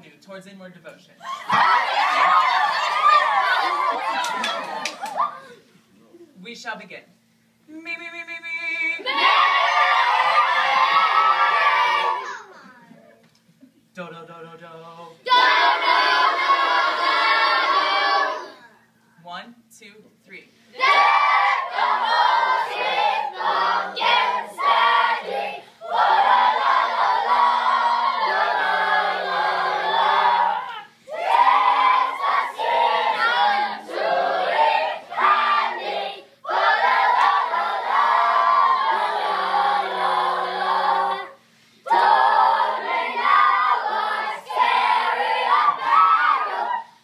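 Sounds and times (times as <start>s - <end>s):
girls choir singing: 1.5s - 4.9s, 9.1s - 12.3s, 15.2s - 18.6s, 20.8s - 46.9s.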